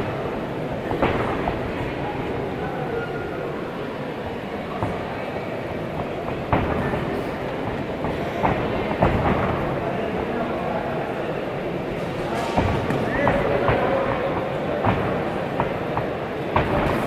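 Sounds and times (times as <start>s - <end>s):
crowd murmur: 0.0s - 17.0s.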